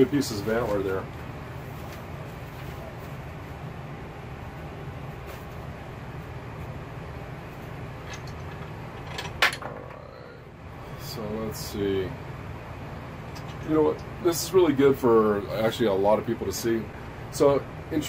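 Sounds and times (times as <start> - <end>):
workshop equipment humming: 0.0 - 18.0.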